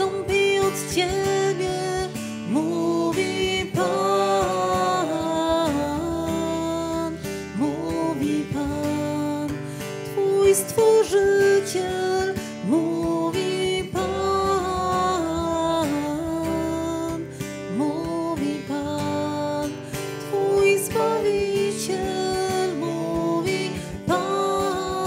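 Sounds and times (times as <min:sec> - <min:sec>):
person singing: 0:00.0 - 0:25.0
strummed acoustic guitar: 0:00.0 - 0:25.0.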